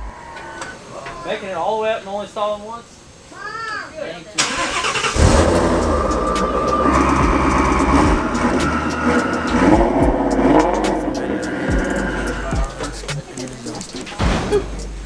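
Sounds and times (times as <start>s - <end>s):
engine cranking: 4.4s - 15.0s
engine idling loudly: 5.2s - 13.1s.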